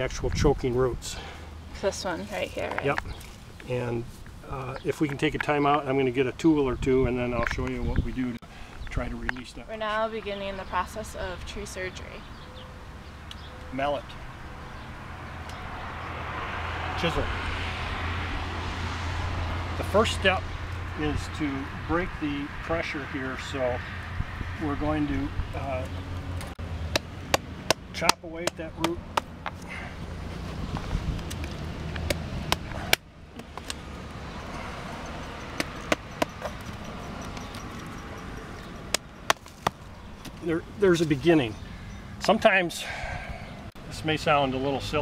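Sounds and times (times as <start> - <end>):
car approaching: 0.0 - 45.0.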